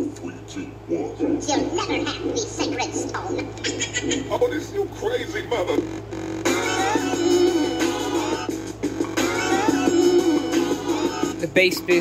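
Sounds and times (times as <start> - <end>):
music from boombox speakers: 1.4 - 12.0.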